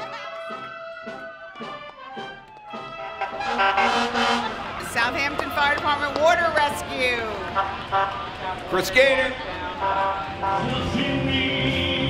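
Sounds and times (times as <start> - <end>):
fire engine passing: 0.0 - 12.0
street noise: 0.0 - 12.0
fire engine horn: 1.8 - 4.8, 7.4 - 8.6, 9.7 - 12.0.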